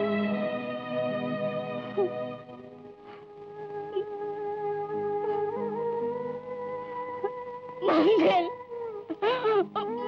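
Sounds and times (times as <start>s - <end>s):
woman sobbing: 7.8s - 10.0s.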